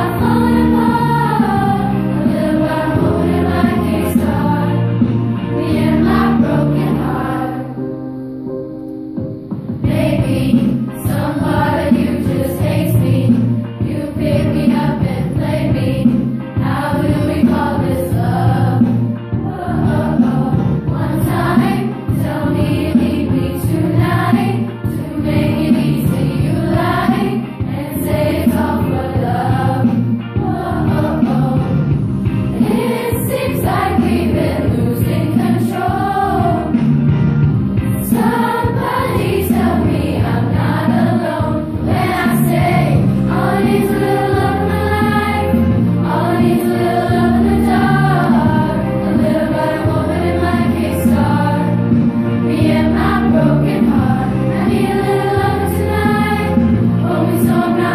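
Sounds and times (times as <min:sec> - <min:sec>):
girls' choir singing: 0:00.0 - 0:08.1, 0:09.8 - 0:37.0, 0:37.9 - 0:57.9.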